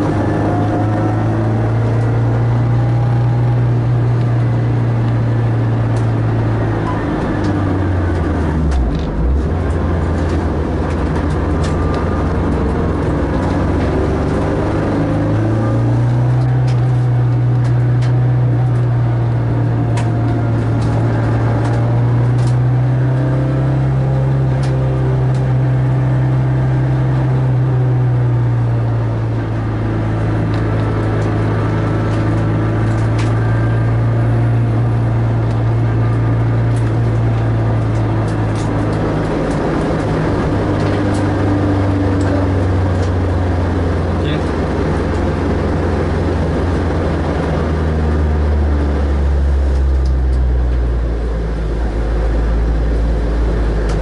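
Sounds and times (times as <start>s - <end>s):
car engine from inside cabin: 0.0s - 54.0s.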